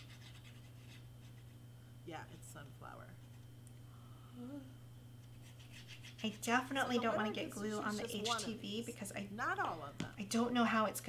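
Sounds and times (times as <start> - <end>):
low electrical hum: 0.0 - 11.0
woman humming softly: 4.2 - 4.8.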